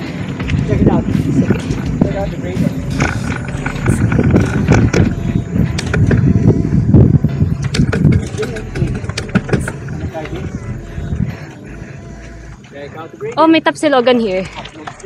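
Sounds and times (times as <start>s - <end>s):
bike clicks and rattles: 0.0s - 10.6s
road and wind rumble: 0.0s - 12.9s.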